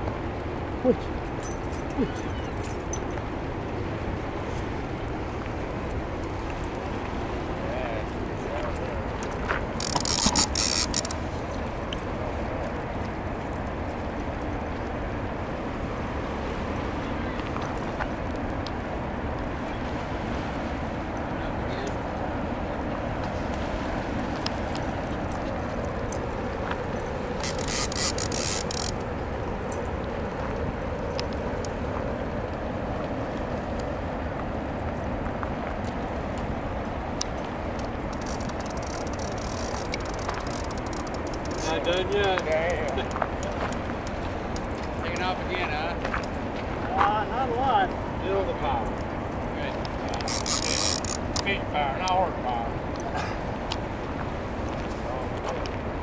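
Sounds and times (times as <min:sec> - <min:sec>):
fast river rushing: 0:00.0 - 0:56.0
fishing reel drag buzzing: 0:09.7 - 0:11.4, 0:27.3 - 0:29.1, 0:38.1 - 0:41.7, 0:50.2 - 0:51.4.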